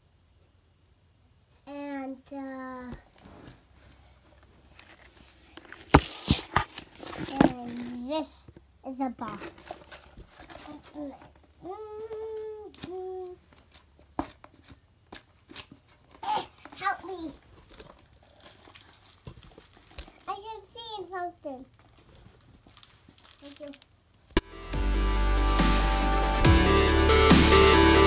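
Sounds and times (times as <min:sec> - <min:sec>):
box crinkling and clicks: 0:04.7 - 0:08.0, 0:17.4 - 0:20.3
small child babbling: 0:10.6 - 0:13.4, 0:16.2 - 0:17.4
loud electronic dubstep music: 0:24.4 - 0:28.0.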